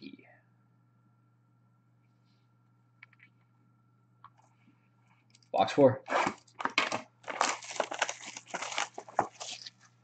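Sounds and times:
plastic wrap crinkling and tearing: 6.1s - 10.0s.

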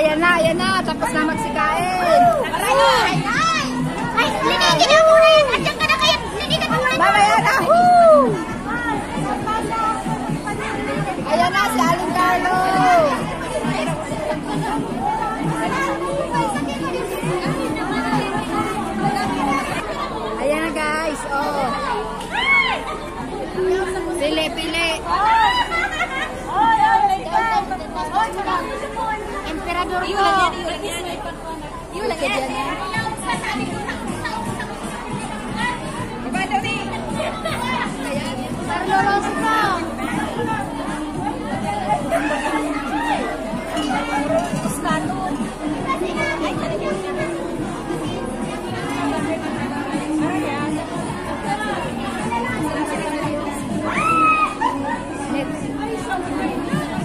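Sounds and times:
crowd of women chattering: 0.0s - 57.0s.

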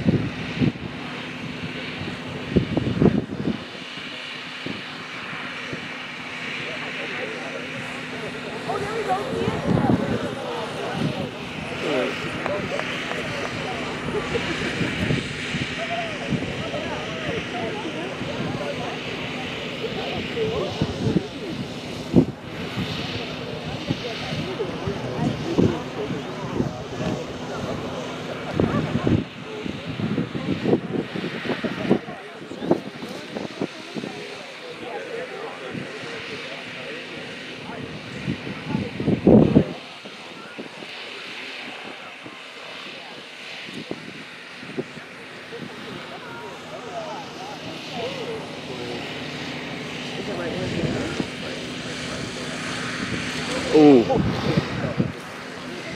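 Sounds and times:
wind gusts on microphone: 0.0s - 7.0s, 7.6s - 36.4s, 37.0s - 55.9s
model airplane motor humming: 0.0s - 55.9s.

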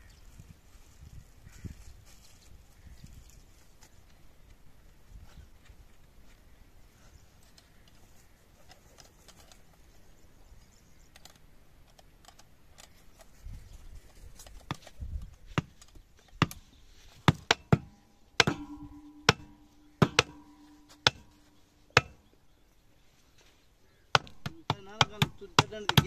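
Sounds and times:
wooden block knocking on wheel: 24.2s - 26.0s
man talking: 24.4s - 26.0s.

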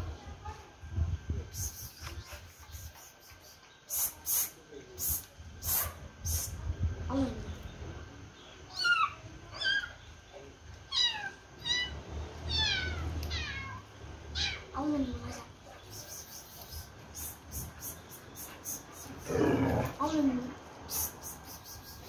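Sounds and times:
animal high-pitched calls: 8.7s - 10.0s.

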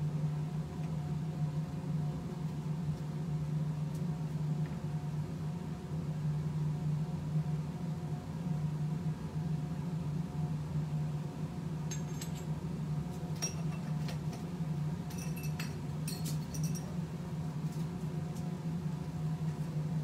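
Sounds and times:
steady low hum: 0.0s - 20.0s
glassware clinking: 15.1s - 16.9s.

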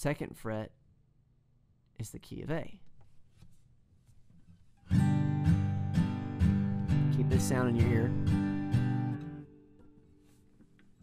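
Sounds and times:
acoustic guitar chord ringing: 4.9s - 10.3s.

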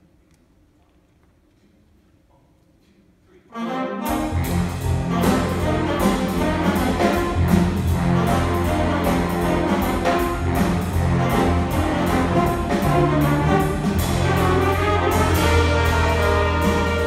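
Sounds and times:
jazz big band playing: 3.5s - 17.0s.

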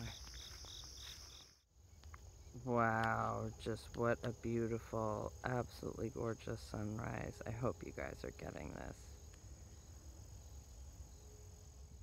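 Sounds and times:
insect high trill: 0.0s - 1.6s, 2.3s - 12.0s
pulsing insect chirp: 0.0s - 12.0s.

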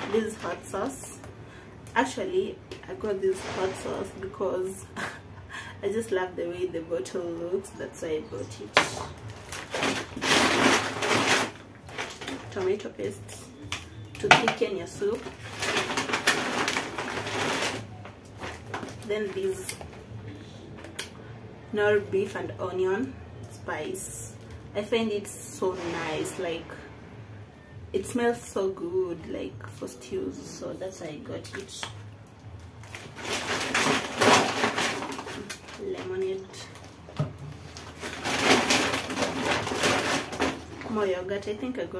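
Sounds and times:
shopping bag rustling: 0.0s - 4.4s, 8.4s - 20.9s, 32.7s - 41.5s.

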